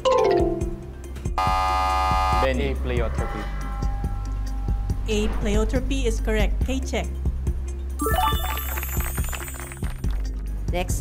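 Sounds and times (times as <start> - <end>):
loud buzzer tone: 1.4 - 5.0.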